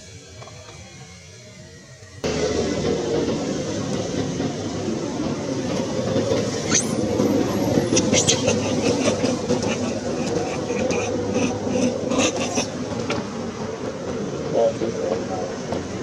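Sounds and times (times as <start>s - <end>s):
loud rumbling background noise: 2.1s - 16.0s
high-pitched squeal: 6.2s - 12.8s.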